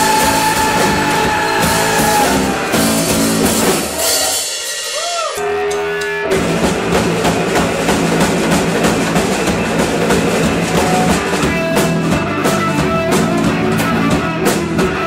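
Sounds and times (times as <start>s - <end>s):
rock band playing: 0.0s - 15.0s.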